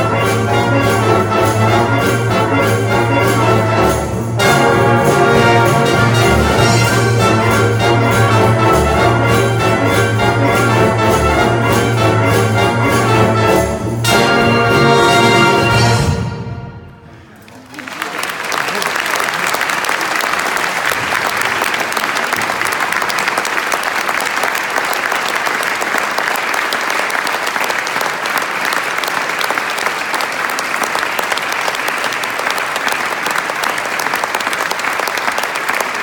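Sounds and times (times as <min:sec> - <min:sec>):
audience applauding: 0:17.2 - 0:36.0.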